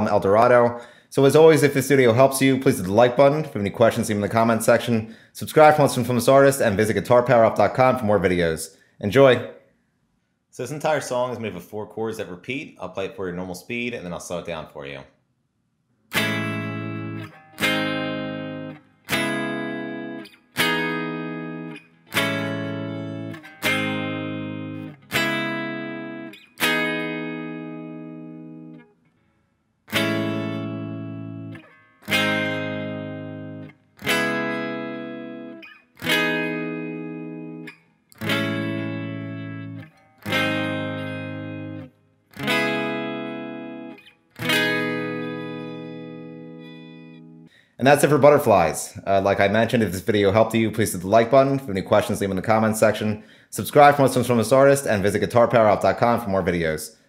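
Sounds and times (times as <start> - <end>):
electric guitar chords: 16.1 - 28.9, 29.9 - 47.6.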